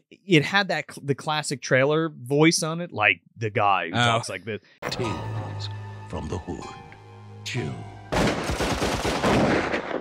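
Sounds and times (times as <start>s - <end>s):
rapid automatic gunfire: 8.1s - 10.0s.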